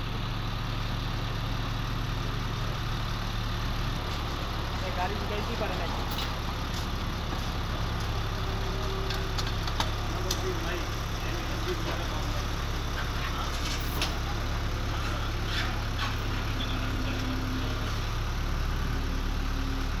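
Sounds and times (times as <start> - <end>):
truck engine droning: 0.0 - 20.0.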